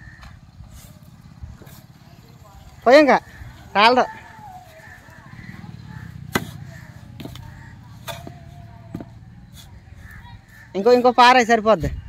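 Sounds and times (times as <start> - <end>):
low steady rumble: 0.0 - 10.7
metal spade scraping sand: 0.7 - 2.0, 6.3 - 10.2.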